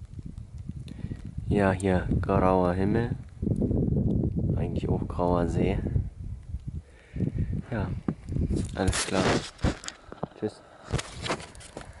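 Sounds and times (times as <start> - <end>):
camera handling thumps and rustles: 8.0 - 12.0.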